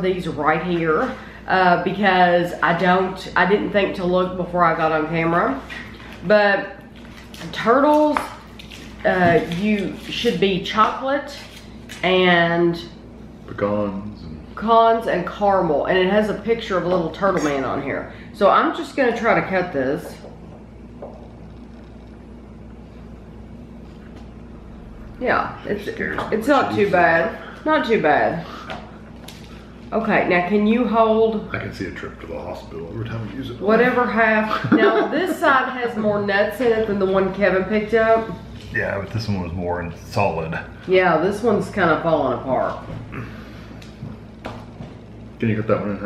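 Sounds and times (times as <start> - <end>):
low room hum: 0.0 - 46.0.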